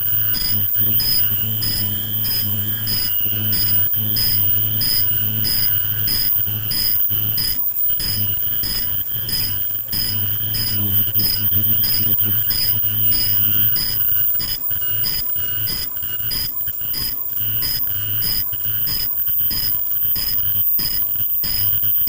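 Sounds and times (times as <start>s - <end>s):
machine hum: 0.0s - 22.0s
machine whine: 0.0s - 22.0s.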